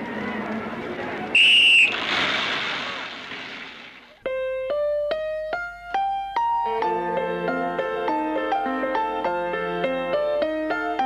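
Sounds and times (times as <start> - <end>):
shrill whistle blast: 1.4 - 2.0
keyboard music climbing notes: 4.2 - 11.0.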